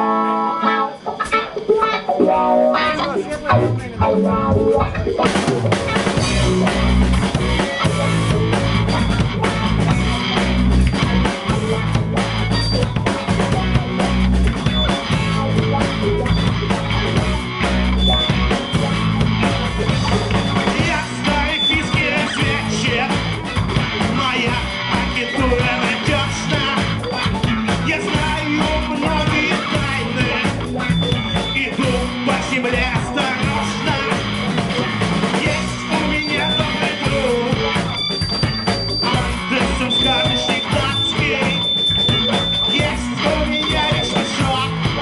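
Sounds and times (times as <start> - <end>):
bass guitar: 0.0 - 45.0
drum kit: 0.0 - 45.0
electric guitars: 0.0 - 45.0.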